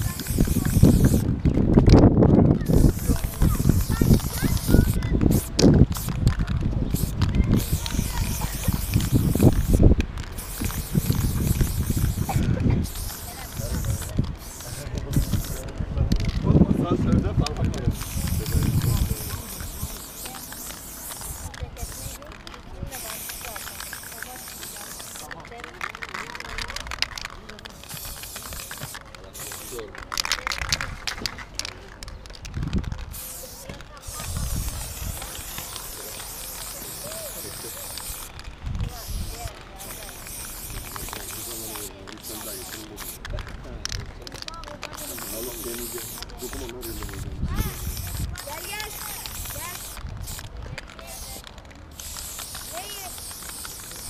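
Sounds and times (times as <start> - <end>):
spray paint can hissing: 0.0 - 16.4, 17.5 - 54.0.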